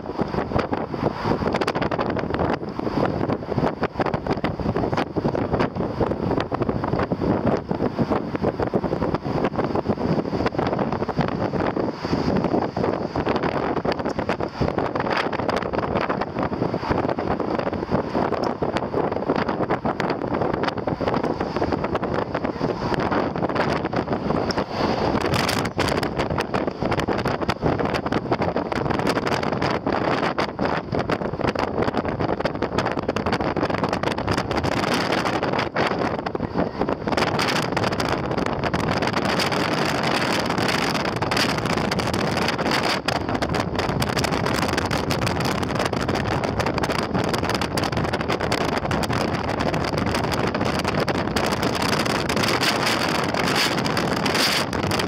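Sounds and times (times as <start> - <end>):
car road and engine noise: 0.0 - 55.0
wind gusting over microphone: 0.0 - 55.0.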